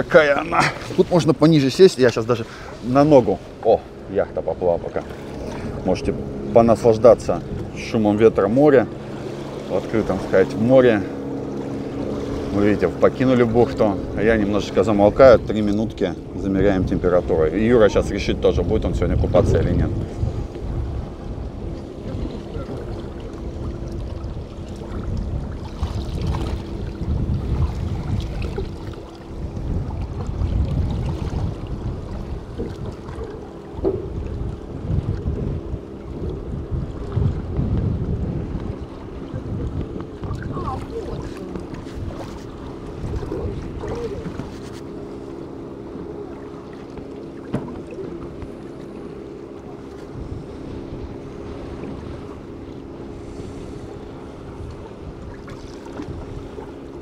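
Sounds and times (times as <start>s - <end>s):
boat motor drone: 0.0s - 57.0s
sea water washing around boat: 0.0s - 57.0s
wind buffeting microphone: 0.0s - 57.0s.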